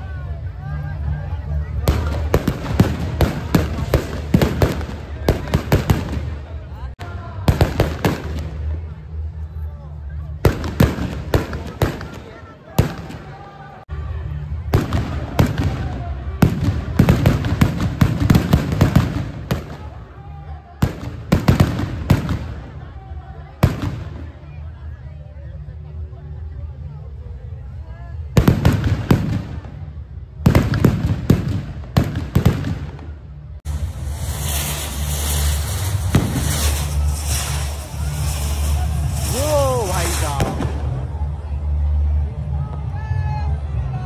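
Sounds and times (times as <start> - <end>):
firecrackers crackling bangs: 1.7 - 9.0, 10.4 - 13.5, 14.6 - 20.2, 20.8 - 23.0, 23.6 - 24.4, 28.3 - 41.3.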